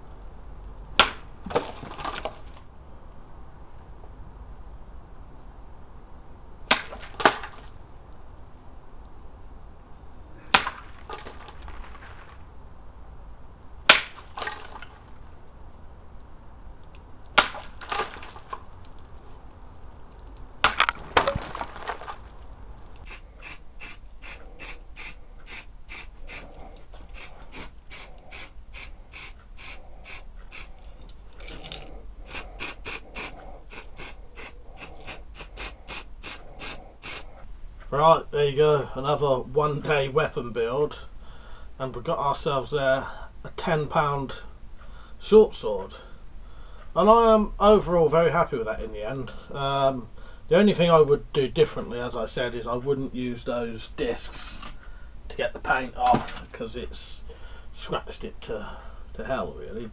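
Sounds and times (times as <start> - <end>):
aerosol can spraying: 23.1 - 26.5, 27.1 - 30.7, 32.3 - 37.3.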